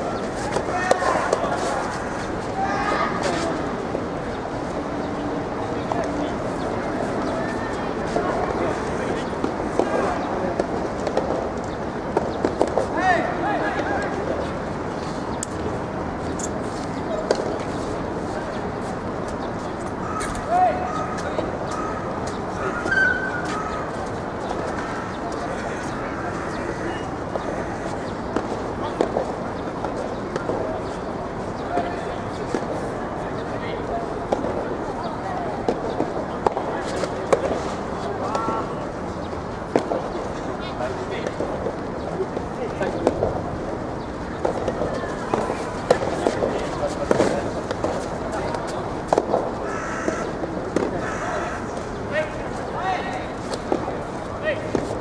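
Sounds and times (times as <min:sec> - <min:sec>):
distant shouting voices: 0:00.0 - 0:10.6, 0:12.8 - 0:14.7, 0:20.0 - 0:39.3, 0:44.2 - 0:54.9
steady background noise: 0:00.0 - 0:55.0.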